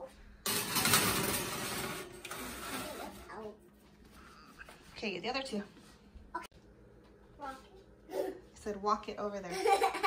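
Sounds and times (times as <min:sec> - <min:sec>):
metal baking sheet scraping on rack: 0:00.5 - 0:03.4.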